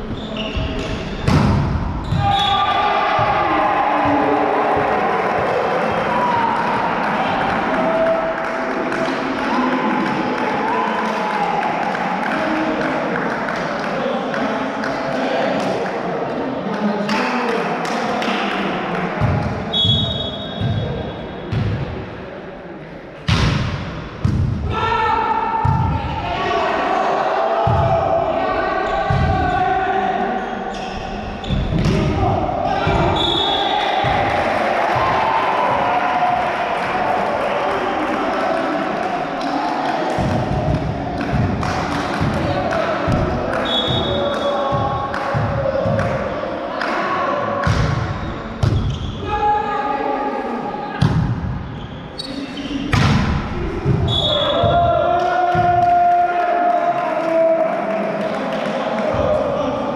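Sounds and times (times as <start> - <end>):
people shouting: 2.0 - 11.7, 24.7 - 30.4, 31.9 - 47.6, 53.6 - 57.6.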